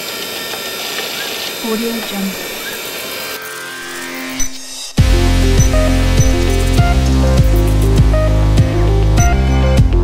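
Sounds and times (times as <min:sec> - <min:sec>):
synthetic hum and tones: 0:01.6 - 0:10.0.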